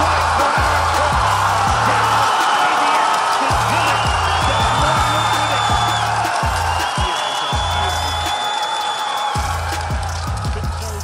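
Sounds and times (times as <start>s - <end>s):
music with deep kick drum: 0.0s - 2.5s, 3.5s - 8.4s, 9.4s - 11.0s.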